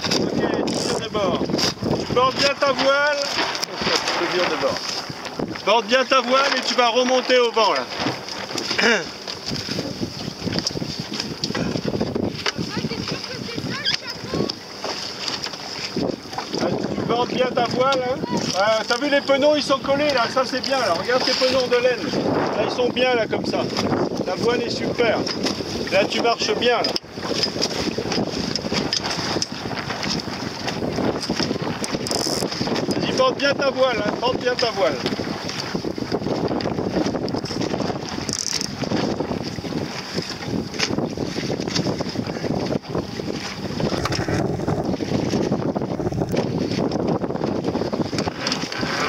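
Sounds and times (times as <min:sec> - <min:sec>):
water splashing against boat hull: 0:00.0 - 0:49.0
wind buffeting microphone: 0:00.0 - 0:49.0.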